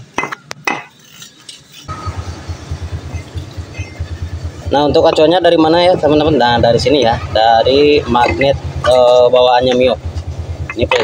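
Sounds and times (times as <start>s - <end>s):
low rhythmic pulsing: 1.9s - 11.0s
metal clinks and knocks: 2.8s - 5.3s.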